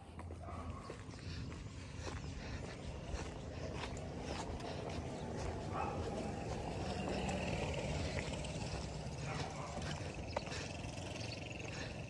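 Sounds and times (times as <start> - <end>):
footsteps on concrete: 0.0 - 12.0
drawn-out animal call: 1.3 - 12.0.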